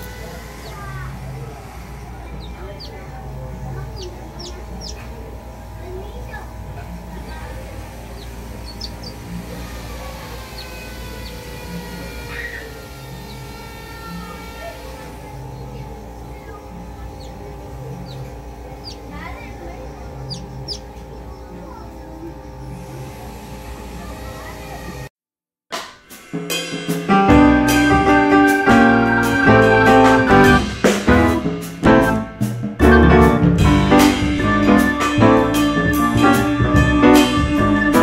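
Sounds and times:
chick peeping: 0.0 - 5.3, 7.2 - 22.7
background music: 25.8 - 38.0.

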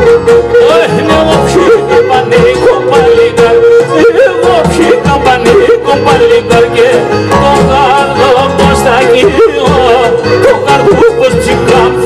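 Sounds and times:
bass drum: 0.0 - 12.0
keyboard: 0.0 - 12.0
man singing: 0.0 - 12.0.

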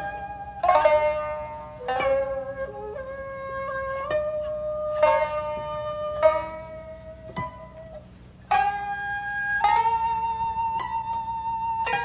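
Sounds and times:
long held note: 0.0 - 12.0
plucked string notes: 0.0 - 12.0.

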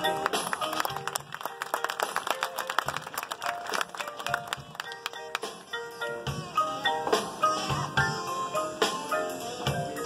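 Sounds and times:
marching band playing: 0.0 - 10.0.

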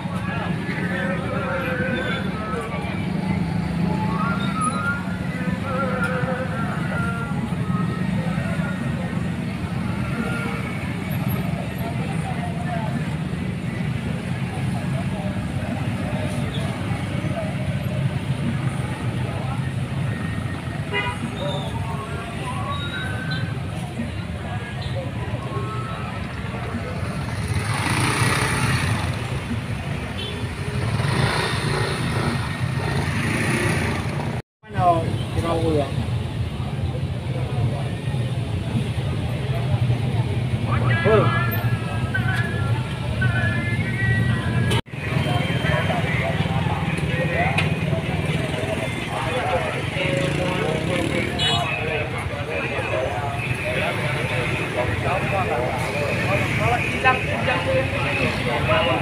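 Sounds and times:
people talking: 0.0 - 33.0, 34.6 - 59.0
motorcycles and cars in traffic: 0.0 - 59.0.

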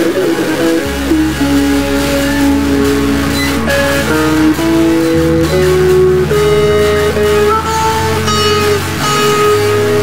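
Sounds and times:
instrumental rock music: 0.0 - 10.0.

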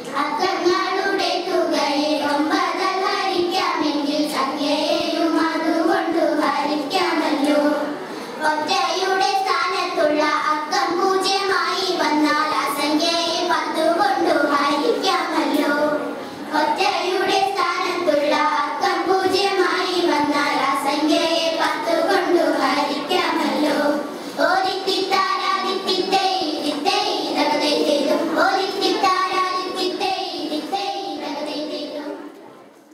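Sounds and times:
girls singing together: 0.0 - 32.4.

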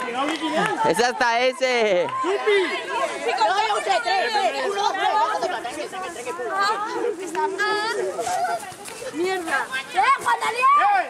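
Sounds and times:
young people talking and calling out: 0.0 - 11.0.

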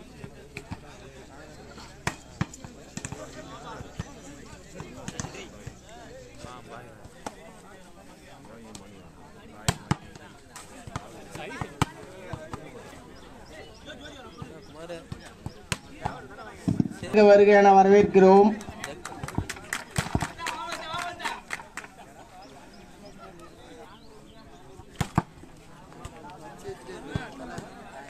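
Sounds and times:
voices talking: 0.0 - 28.0.

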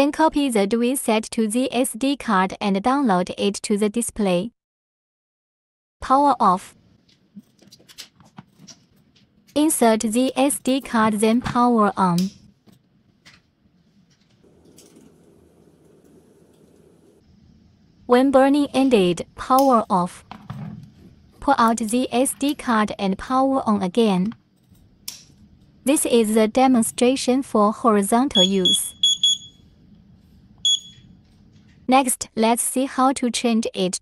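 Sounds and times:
high electronic beep: 28.4 - 29.6, 30.7 - 31.0.

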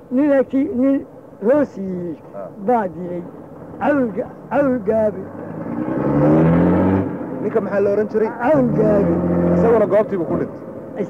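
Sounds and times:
men speaking: 0.0 - 11.0
engine revving then running: 3.5 - 10.5.

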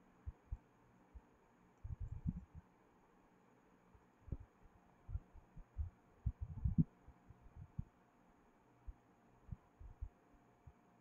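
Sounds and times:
faint steady hum: 0.0 - 11.0
faint low thumps: 1.8 - 2.6, 5.1 - 6.9.

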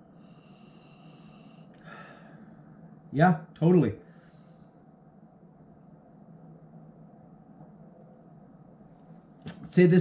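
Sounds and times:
man breathing through nose: 0.0 - 2.5.

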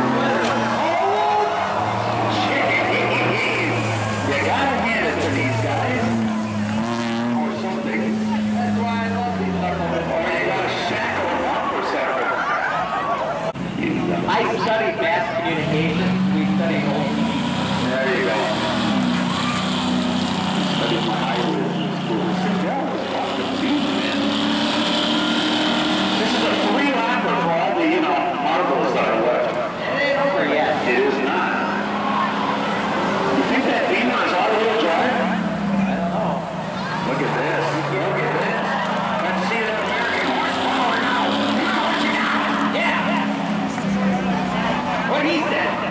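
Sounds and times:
crowd voices: 0.0 - 45.9
racing car engines accelerating: 0.0 - 45.9.

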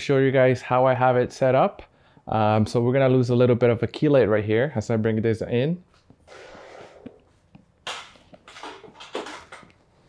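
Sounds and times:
light stand rustling: 6.0 - 10.0.

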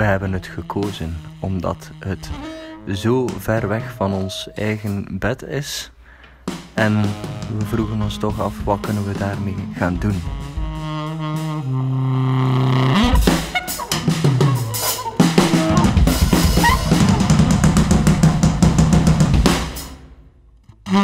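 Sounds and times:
drum kit playing: 0.0 - 4.1, 6.4 - 12.0, 12.6 - 20.2.

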